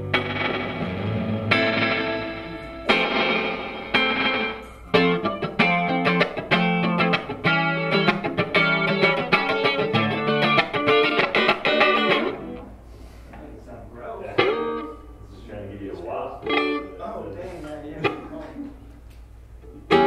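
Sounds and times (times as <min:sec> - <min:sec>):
electric guitar with chorus effect: 0:00.0 - 0:12.8, 0:14.4 - 0:15.1, 0:16.4 - 0:17.0, 0:19.6 - 0:20.0.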